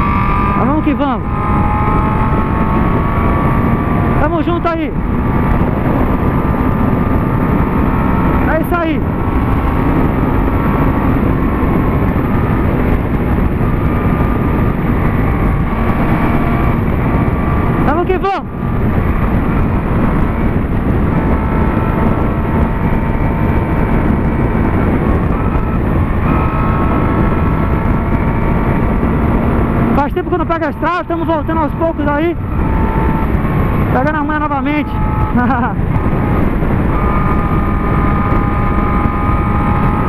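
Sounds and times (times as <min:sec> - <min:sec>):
heavy wind rush: 0:00.0 - 0:40.0
motorcycle engine cruising: 0:00.0 - 0:40.0.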